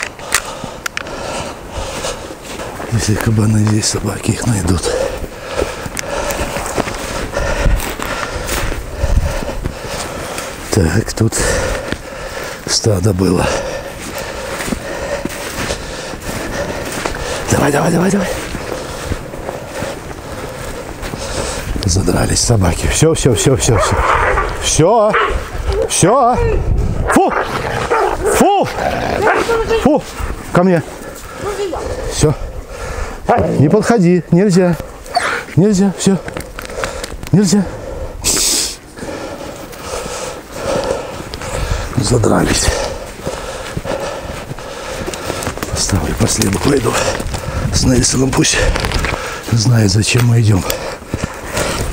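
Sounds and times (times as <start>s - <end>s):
heavy breathing: 0.0s - 3.0s, 4.4s - 22.8s, 27.6s - 33.6s, 34.8s - 51.9s
footsteps in wet snow: 0.0s - 26.2s, 38.3s - 51.9s.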